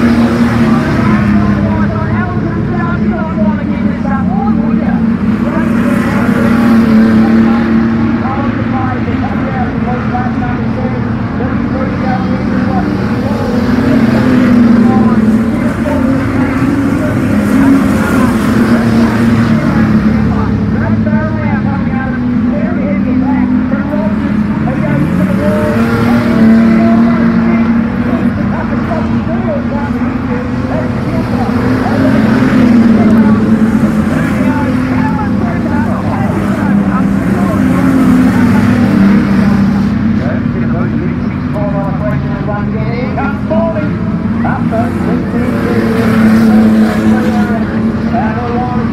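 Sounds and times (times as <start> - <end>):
race car engines passing: 0.0 - 48.9.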